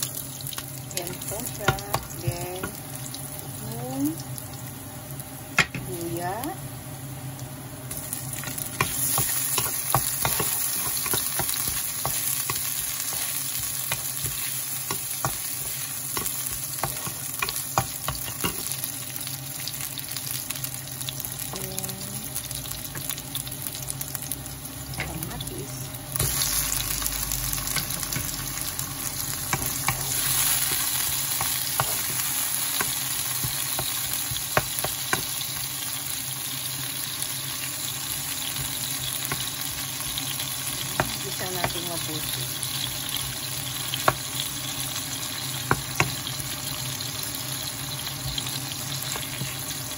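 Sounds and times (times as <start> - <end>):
onion sizzling in hot oil: 0.0 - 49.9.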